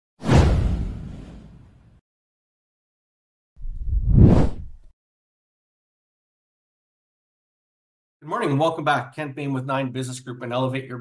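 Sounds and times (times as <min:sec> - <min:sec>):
whoosh with deep rumble: 0:03.6 - 0:04.8.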